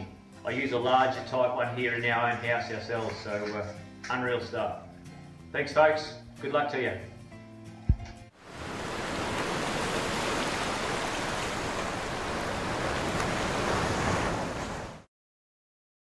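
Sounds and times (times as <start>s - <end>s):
low thump: 7.9s - 8.2s
surf-like rushing noise: 8.4s - 15.1s.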